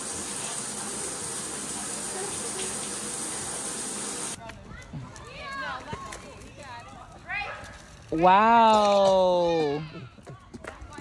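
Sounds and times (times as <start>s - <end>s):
shower water running: 0.0s - 4.4s.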